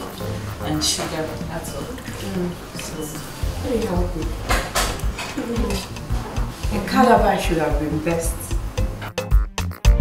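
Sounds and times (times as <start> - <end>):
metal bowls clattering: 0.8 - 7.0.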